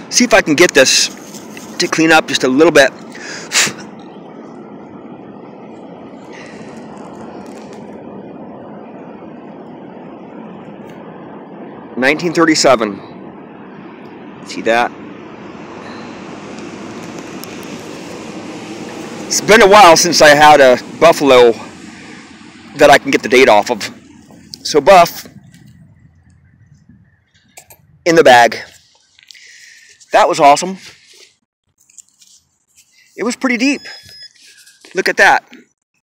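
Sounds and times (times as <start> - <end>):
steady background rumble: 0.0 - 30.8.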